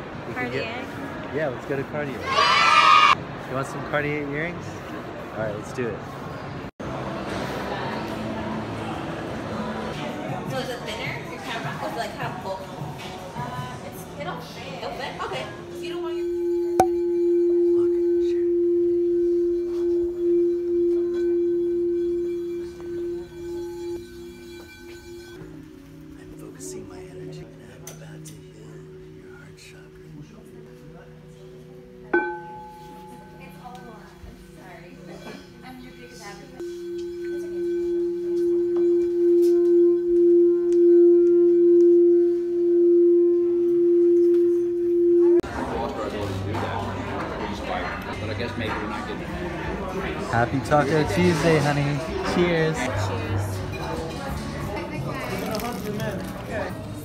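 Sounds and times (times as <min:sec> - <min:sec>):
singing bowl sustained low tone: 0:15.8 - 0:25.5, 0:32.1 - 0:45.4
mallet clicking on bowl: 0:16.7 - 0:17.1.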